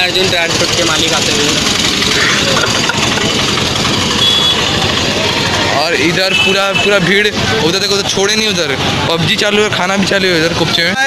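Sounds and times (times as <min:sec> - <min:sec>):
crowd street noise: 0:00.0 - 0:11.0
motorcycle engines running: 0:00.0 - 0:11.0.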